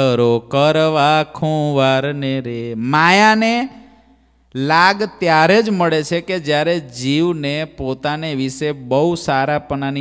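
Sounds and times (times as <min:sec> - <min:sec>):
man singing unaccompanied: 0:00.0 - 0:03.6.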